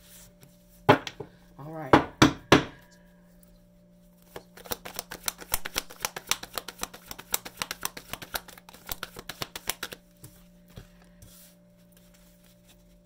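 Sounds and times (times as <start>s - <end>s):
cards being shuffled: 4.2s - 10.4s.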